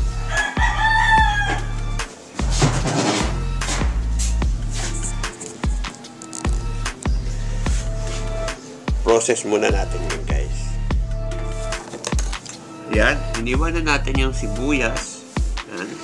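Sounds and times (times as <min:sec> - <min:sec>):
rooster crowing: 0:00.0 - 0:02.0
background music: 0:00.0 - 0:16.0.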